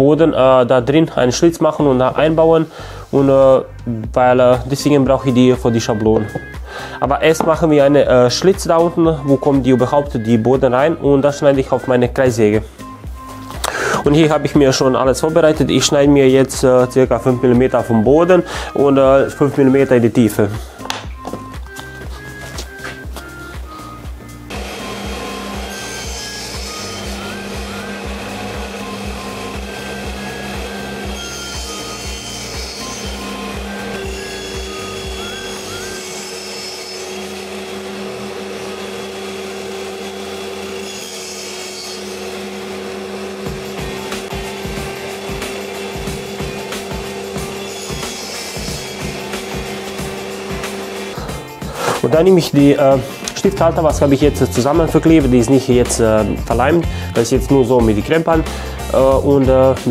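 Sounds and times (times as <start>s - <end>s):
background music: 0.0s - 59.9s
table saw cutting plywood: 4.8s - 12.6s, 20.8s - 59.9s.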